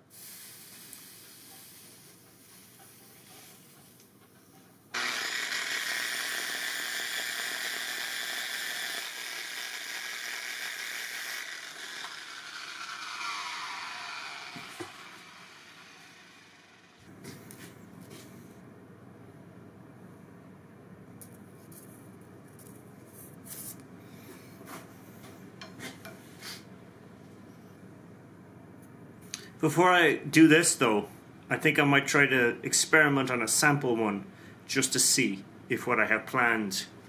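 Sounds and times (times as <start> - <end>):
sanding disc grinding metal: 5.0 - 17.0.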